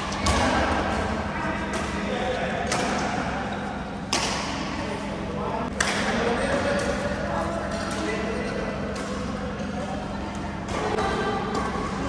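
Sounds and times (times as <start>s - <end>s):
rackets smacking shuttlecock: 2.6s - 3.2s.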